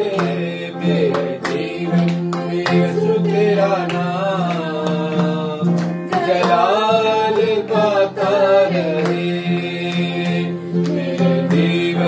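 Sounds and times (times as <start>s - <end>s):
person singing a melody: 0.0s - 12.0s
strummed strokes: 0.0s - 12.0s.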